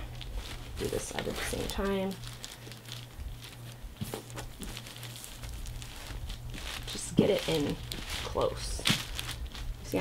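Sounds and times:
low steady hum: 0:00.0 - 0:10.0
plastic sheet and fabric rustling: 0:00.0 - 0:10.0
sharp plastic crackle: 0:00.0 - 0:10.0.

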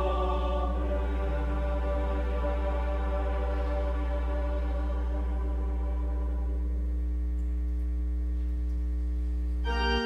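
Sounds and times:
church organ holding low notes: 0:00.0 - 0:07.3, 0:09.6 - 0:10.0.

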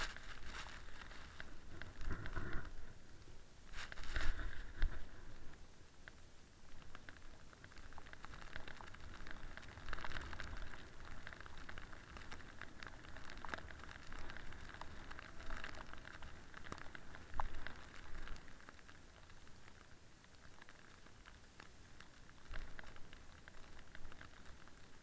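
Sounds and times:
snowboard scraping over snow: 0:00.0 - 0:02.9, 0:03.7 - 0:05.1.

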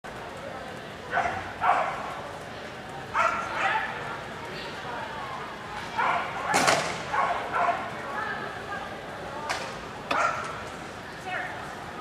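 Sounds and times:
dog barking: 0:01.1 - 0:02.0, 0:03.2 - 0:04.0, 0:06.0 - 0:07.9, 0:10.1 - 0:10.5.

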